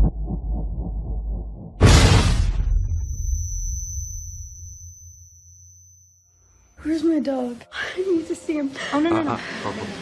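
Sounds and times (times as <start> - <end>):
explosion rumble: 0.0 - 3.3
high-pitched ringing tone: 2.6 - 7.0.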